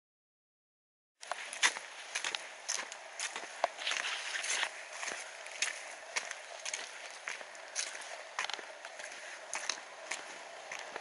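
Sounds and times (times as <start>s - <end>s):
footsteps on paved path: 1.2s - 11.0s.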